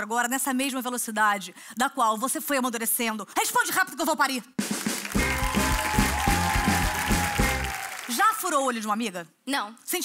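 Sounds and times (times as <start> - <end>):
audience applause: 4.7 - 8.6.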